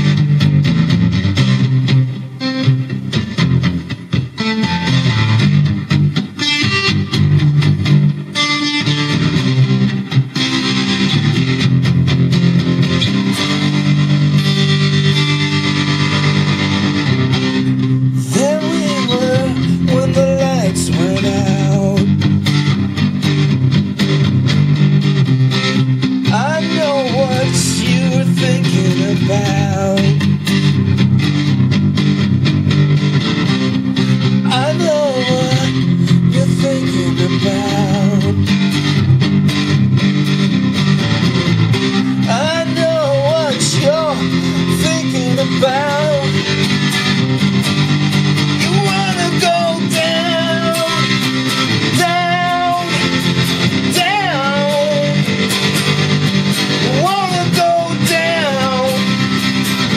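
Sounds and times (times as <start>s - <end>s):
electric guitar with tremolo: 0.0s - 59.9s.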